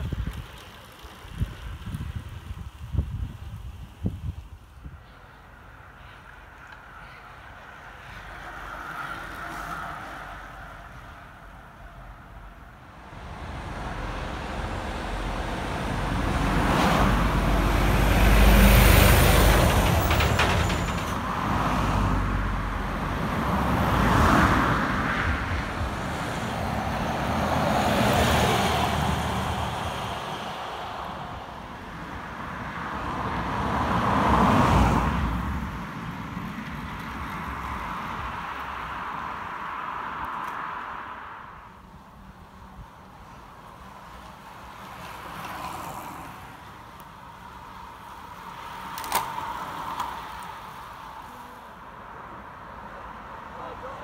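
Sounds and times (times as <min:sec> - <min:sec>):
road traffic passing: 0:00.0 - 0:54.0.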